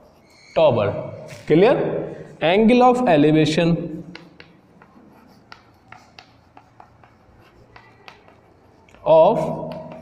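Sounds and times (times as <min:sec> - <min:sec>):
chalk tapping and scraping: 0:00.0 - 0:01.6, 0:03.2 - 0:10.0.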